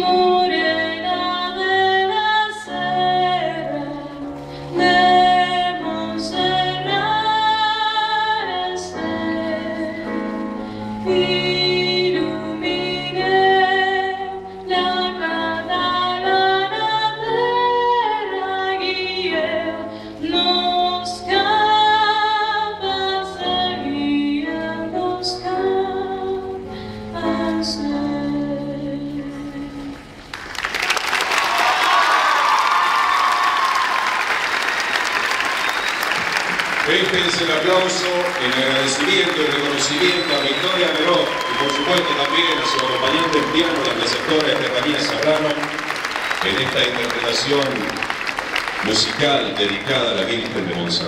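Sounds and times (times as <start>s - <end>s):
woman singing: 0.0s - 10.3s, 11.0s - 30.0s
piano chords: 0.0s - 30.4s, 36.0s - 51.0s.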